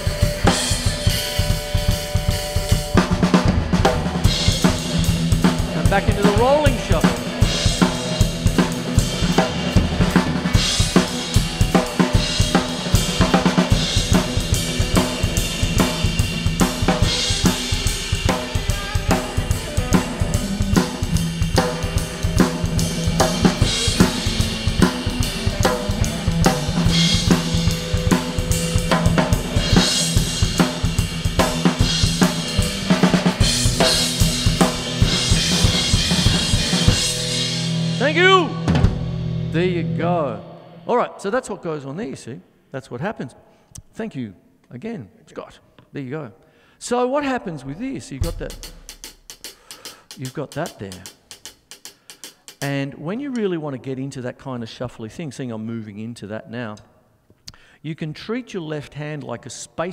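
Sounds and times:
drum kit groove: 0.0 - 40.9, 47.7 - 53.0
electric guitar: 0.0 - 40.9.

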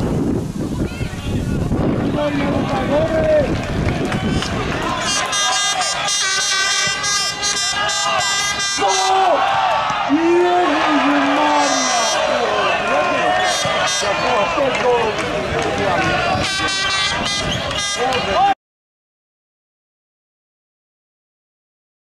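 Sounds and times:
spectators shouting: 2.1 - 18.6
air horn blasts: 5.0 - 9.4, 11.3 - 14.4, 16.4 - 18.2.

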